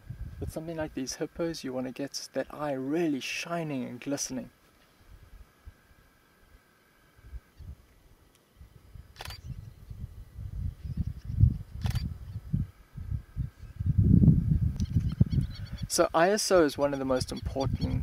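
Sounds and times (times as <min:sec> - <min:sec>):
camera shutter clicks: 0:09.2 - 0:09.5, 0:11.8 - 0:12.1.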